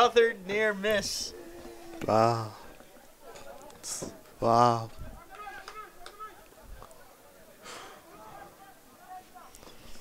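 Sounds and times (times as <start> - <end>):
distant voices calling out: 0.4 - 9.1.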